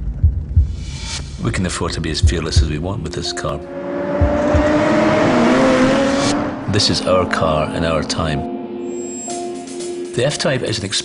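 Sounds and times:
car engine running: 2.1s - 8.2s.

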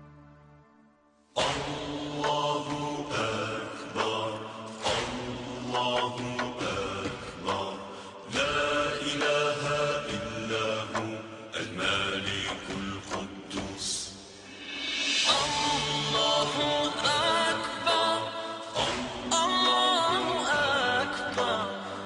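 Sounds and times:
person chanting: 1.4s - 22.0s.

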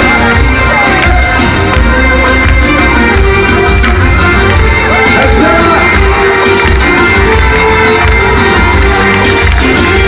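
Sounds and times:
live band music through speakers: 0.0s - 10.0s.

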